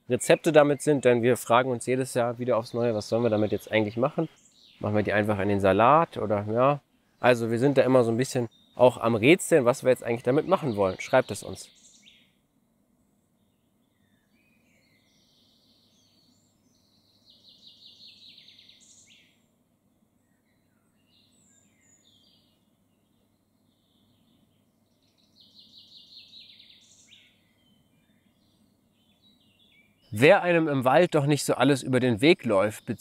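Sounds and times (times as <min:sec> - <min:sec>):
faint bird chirps: 0:00.0 - 0:33.0
songbird singing: 0:00.0 - 0:33.0.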